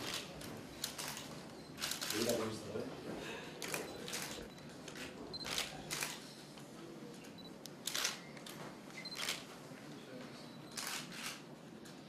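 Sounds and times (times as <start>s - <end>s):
camera shutters clicking: 0.0s - 2.4s, 3.6s - 6.2s, 7.8s - 8.6s, 9.2s - 9.4s, 10.7s - 11.4s.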